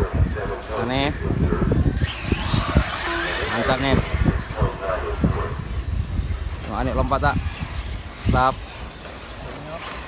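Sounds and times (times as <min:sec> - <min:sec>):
model car engines whining: 0:01.9 - 0:04.5.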